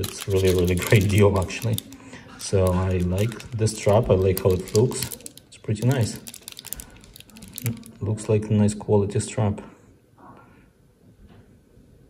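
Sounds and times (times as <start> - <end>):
plastic sleeve crinkling: 0.0 - 8.3.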